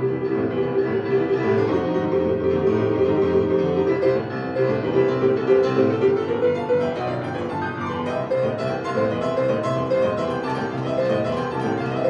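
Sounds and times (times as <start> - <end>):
boogie-woogie piano: 0.0 - 12.0.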